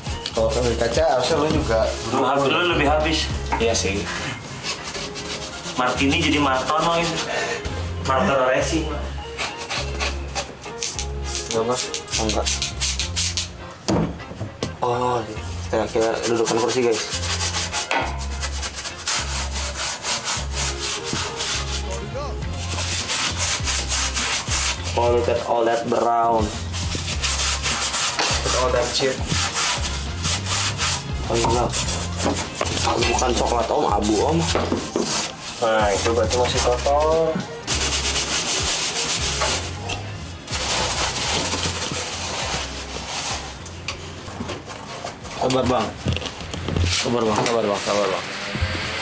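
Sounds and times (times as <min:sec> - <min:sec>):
stiff brush scrubbing metal: 0:03.6 - 0:07.4, 0:15.6 - 0:25.5, 0:26.4 - 0:39.8, 0:40.4 - 0:43.6.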